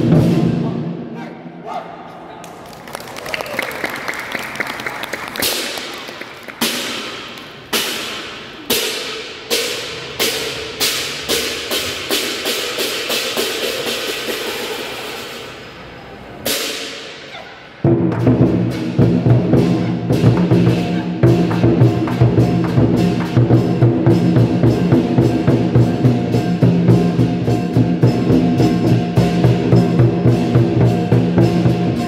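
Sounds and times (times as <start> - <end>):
drums: 0.0 - 1.0, 6.6 - 32.0.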